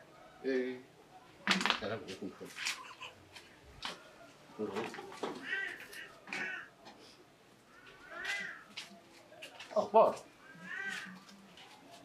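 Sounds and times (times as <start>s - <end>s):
cat meowing: 7.8s - 8.7s, 10.5s - 11.2s.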